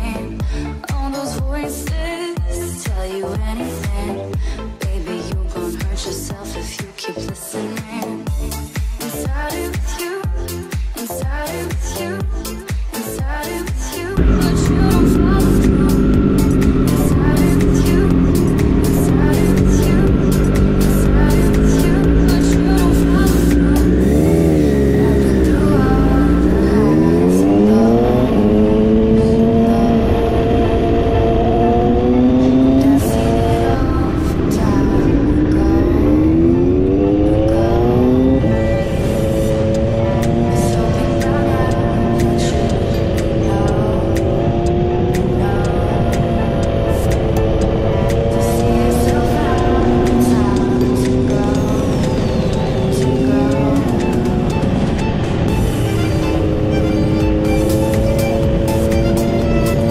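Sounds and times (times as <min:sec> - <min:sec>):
motorcycle engine accelerating: 0:14.1 - 0:59.9.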